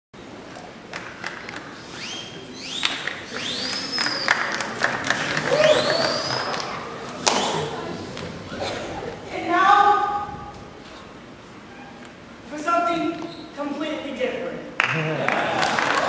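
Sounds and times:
high rising whistles: 1.9 - 4.4, 5.5 - 6.7
scattered claps: 2.8 - 8.3
person whooping: 5.1 - 7.9.

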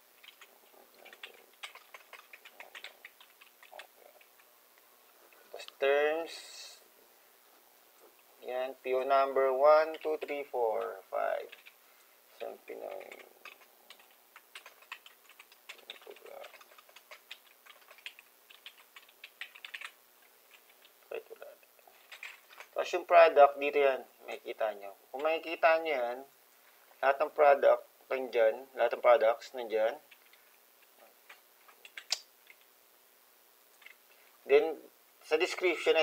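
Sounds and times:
typing on computer keyboard: 0.2 - 3.9, 12.9 - 20.0
faint clicks: 0.2 - 5.8, 12.8 - 22.8, 30.1 - 32.7.

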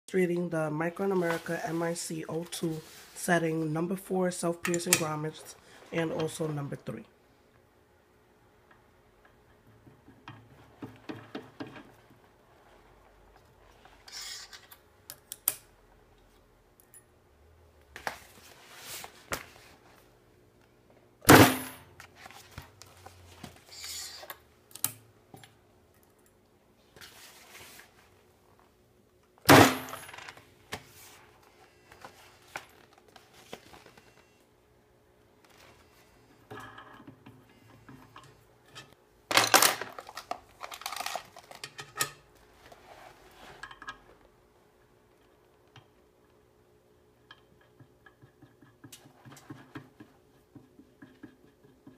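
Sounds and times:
grommets and fabric rustling: 0.8 - 3.8.

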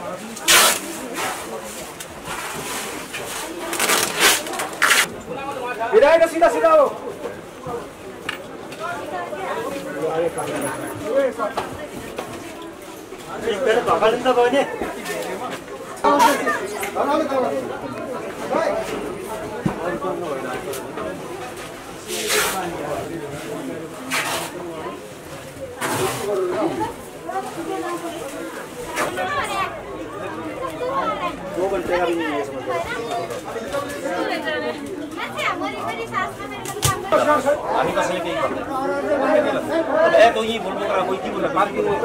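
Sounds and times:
chatter of voices: 0.0 - 42.0
people talking at once: 0.0 - 42.0.

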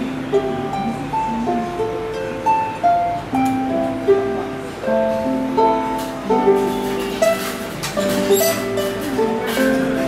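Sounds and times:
harp melody: 0.0 - 10.0.

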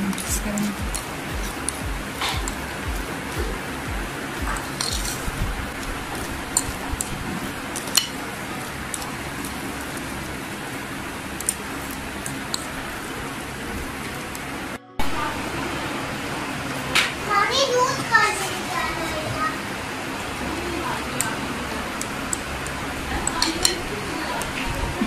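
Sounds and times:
background hiss: 0.0 - 25.0.

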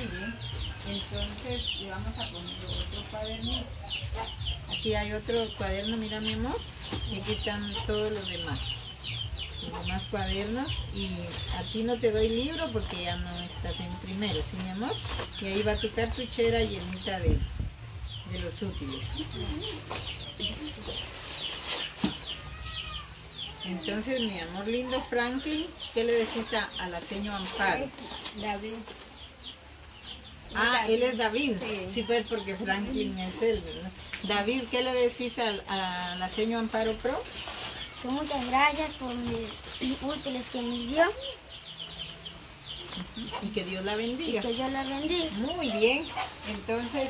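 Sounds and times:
chicks peeping: 0.0 - 47.0.

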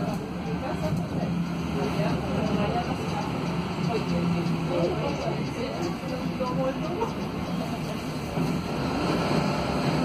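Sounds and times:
bus diesel engine humming: 0.0 - 10.0
passengers talking: 0.0 - 10.0.

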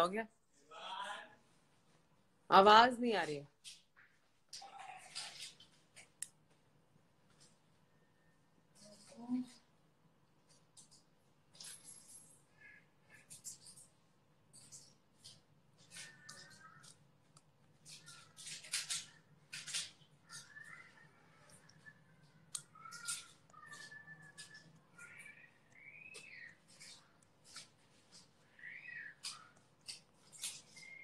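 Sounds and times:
faint muffled sounds: 0.0 - 31.0.

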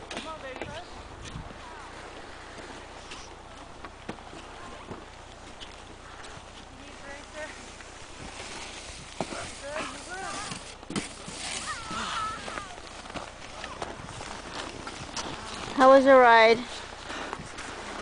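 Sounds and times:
footsteps in snow: 0.4 - 18.0
distant children calling out: 11.5 - 14.0.

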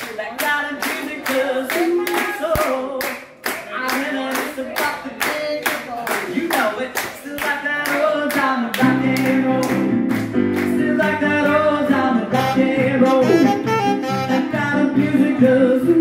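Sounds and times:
hands clapping in rhythm: 0.0 - 11.6
voices singing along: 6.7 - 16.0.

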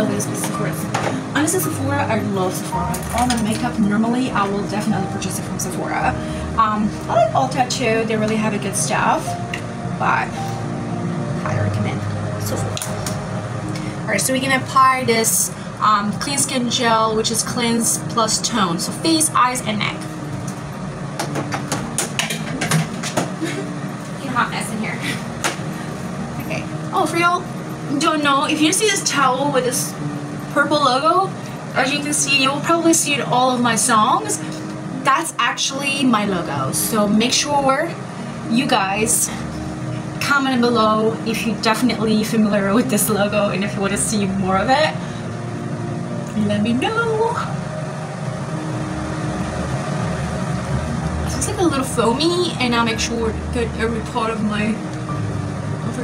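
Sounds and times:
steady low hum: 0.0 - 56.0
low rumble: 39.2 - 56.0.

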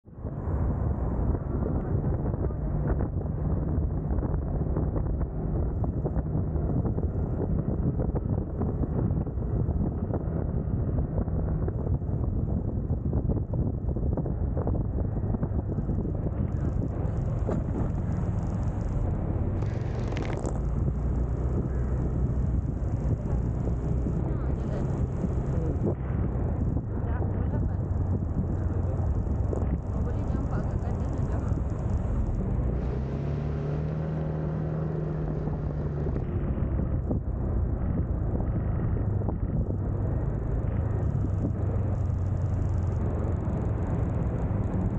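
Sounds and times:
low road rumble: 0.0 - 44.9
wind buffeting microphone: 0.1 - 44.9
faint scooter engine: 15.6 - 32.8.

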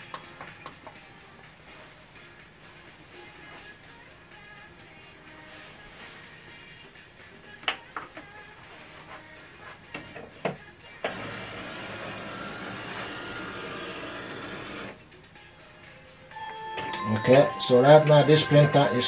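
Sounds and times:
faint background music: 0.0 - 19.0
printer mechanism running: 11.1 - 15.0.

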